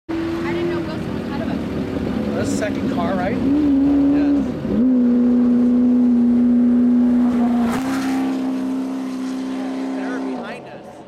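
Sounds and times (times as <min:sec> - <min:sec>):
vehicle engine running: 0:00.1 - 0:11.0.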